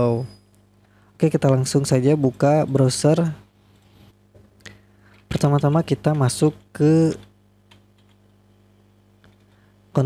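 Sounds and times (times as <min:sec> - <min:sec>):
keyboard typing clicks: 0:07.2 - 0:08.3.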